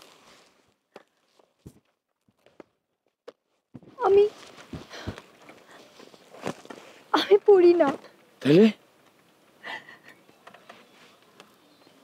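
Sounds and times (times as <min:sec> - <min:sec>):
background hiss: 0:00.0 - 0:01.8, 0:03.7 - 0:12.0.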